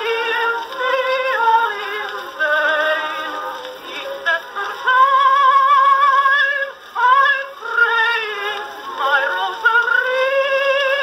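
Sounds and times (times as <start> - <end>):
old phonograph recording of woman singing: 0.0 - 11.0.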